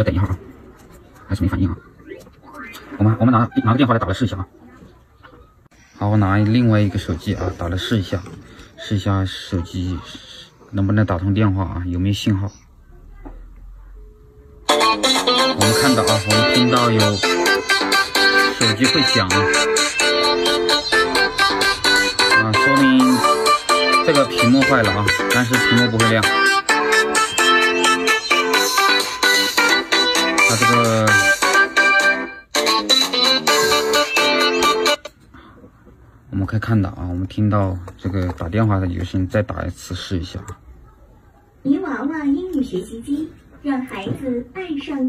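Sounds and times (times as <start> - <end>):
guitar ringtone music: 3.4 - 4.0, 14.3 - 35.1.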